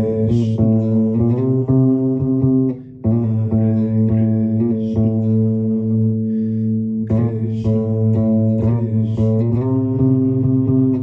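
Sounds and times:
electric bass guitar: 0.0 - 11.0.

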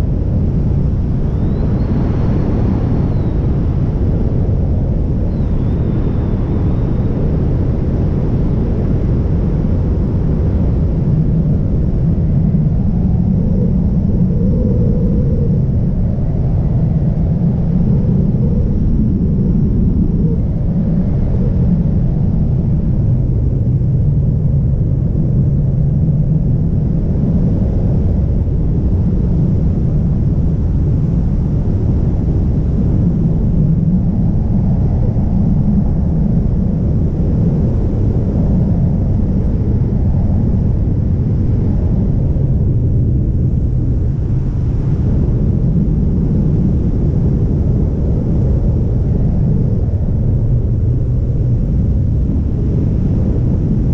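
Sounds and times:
wind rushing over microphone: 0.0 - 53.9.

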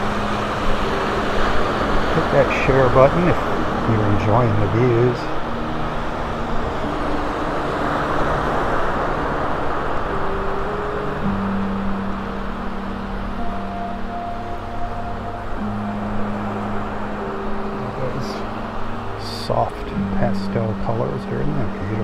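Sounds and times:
soft music of held notes: 0.0 - 22.0
waves washing up beach: 0.0 - 22.0.

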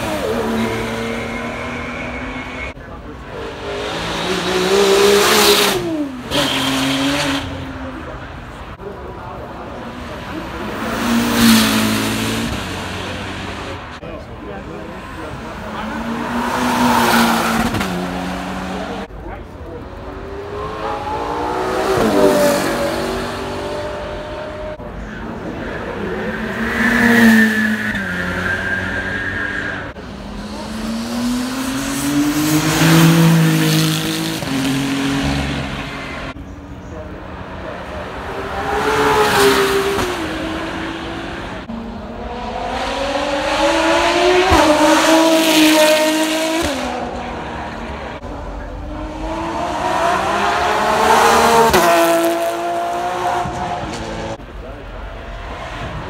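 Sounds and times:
racing cars accelerating past: 37.4 - 54.4.

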